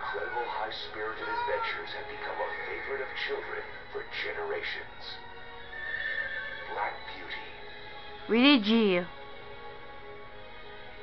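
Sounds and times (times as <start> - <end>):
horse neighing: 5.7 - 6.7
narrator speaking: 8.3 - 9.1.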